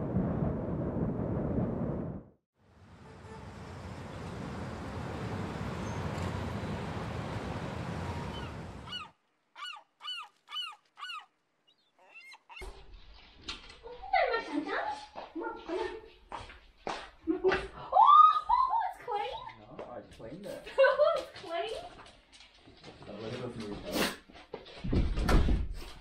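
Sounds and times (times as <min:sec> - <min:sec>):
city traffic noise: 0:02.6 - 0:09.0
small dog yipping: 0:08.3 - 0:11.3
woman talking: 0:18.3 - 0:19.5, 0:21.0 - 0:21.9.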